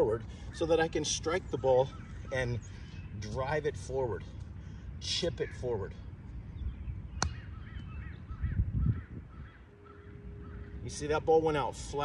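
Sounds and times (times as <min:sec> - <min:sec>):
bird calling: 0:00.2 - 0:03.4, 0:04.6 - 0:11.2.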